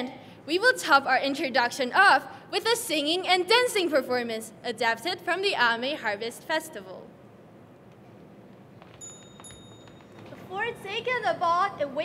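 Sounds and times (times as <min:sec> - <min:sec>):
quiet hall noise: 0:00.0 - 0:12.0
small bell ringing: 0:09.0 - 0:10.5.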